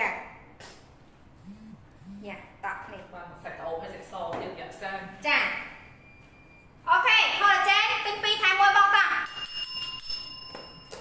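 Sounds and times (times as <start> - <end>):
bell-like chime: 9.2 - 11.0.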